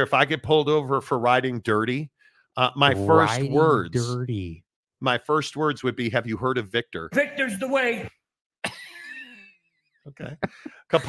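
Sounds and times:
man laughing breathily: 10.3 - 11.0.

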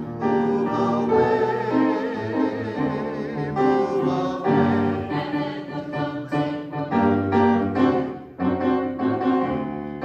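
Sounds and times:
hymn played on piano: 0.0 - 10.0.

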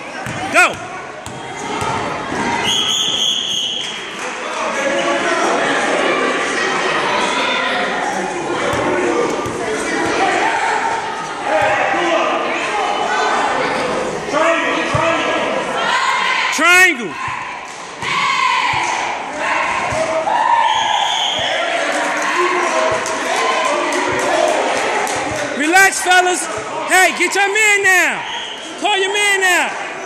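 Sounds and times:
basketball bouncing on court: 0.2 - 2.5.

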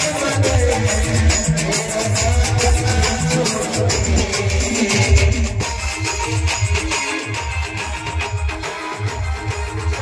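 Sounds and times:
heavy bass drum beat: 0.0 - 10.0
live band dance music: 0.0 - 10.0.

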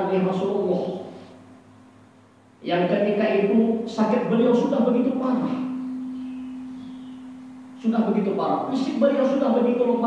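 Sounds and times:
low pure tone feedback ringing: 0.0 - 10.0
man talking: 2.6 - 5.8, 7.8 - 10.0.

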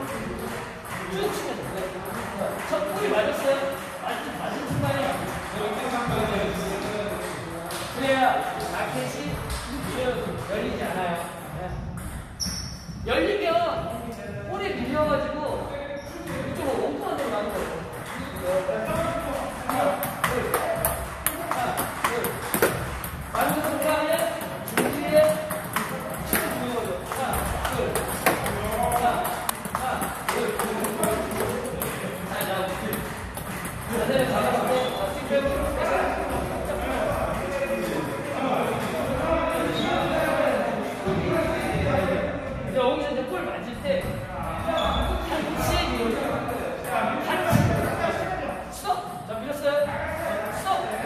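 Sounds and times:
table tennis ball knocking: 17.2 - 39.0.

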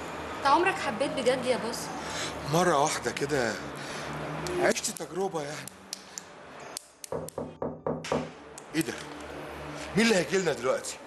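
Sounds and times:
rapid knocking on a door: 7.1 - 8.4.

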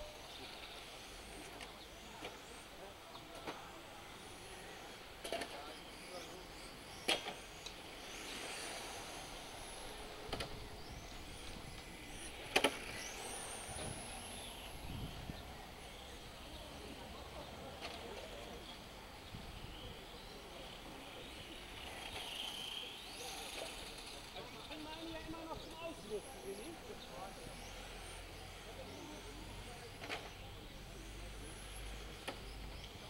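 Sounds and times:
electric toy car motor whine: 0.0 - 33.0.

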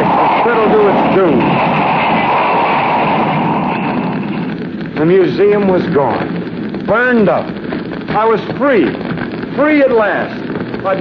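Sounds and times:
flames rushing: 0.0 - 11.0.

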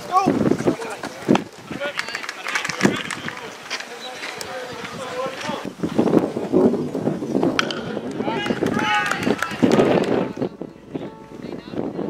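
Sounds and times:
spectators cheering and yelling: 7.6 - 10.5
high drawn-out shouts: 8.2 - 9.8.

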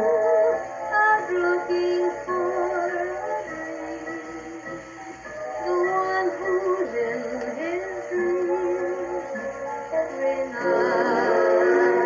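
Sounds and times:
singer with vibrato: 0.0 - 4.7, 5.6 - 12.0
swing band record: 0.0 - 12.0.

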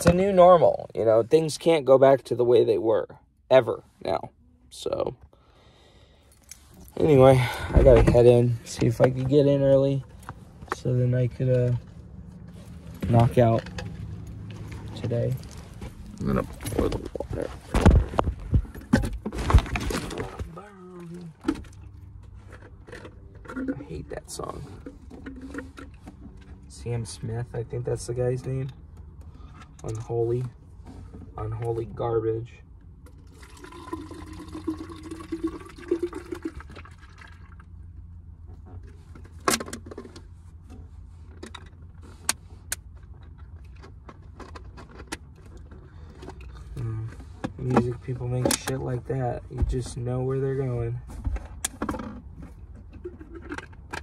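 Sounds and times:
low steady hum: 0.0 - 54.0
water pouring into a container: 33.3 - 37.6.

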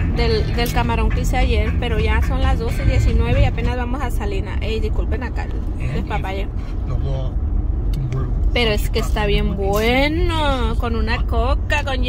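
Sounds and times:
car cabin rumble: 0.0 - 12.0
indistinct voices: 0.0 - 12.0.

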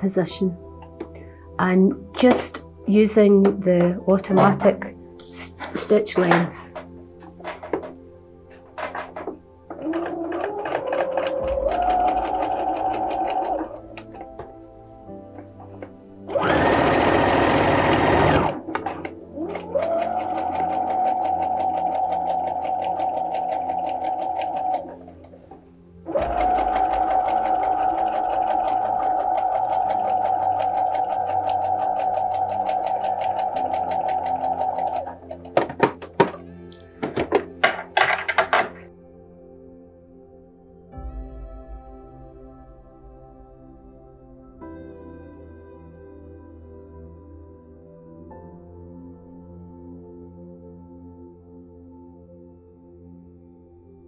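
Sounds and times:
sewing machine motor whine: 9.8 - 13.8, 16.3 - 18.6, 19.4 - 25.0, 26.1 - 35.2.

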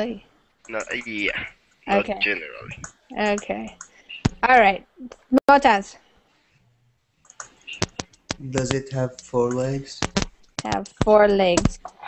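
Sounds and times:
faint voices: 0.0 - 4.3, 7.6 - 12.0
faint low hum: 0.0 - 4.8, 8.4 - 10.0.

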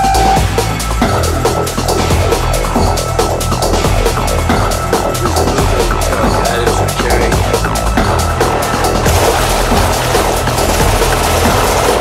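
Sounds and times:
hard techno music: 0.0 - 12.0.

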